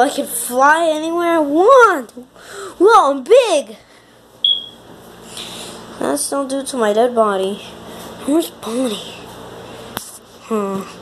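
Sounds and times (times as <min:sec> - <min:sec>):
high-pitched electronic beep: 0:04.4 - 0:04.8.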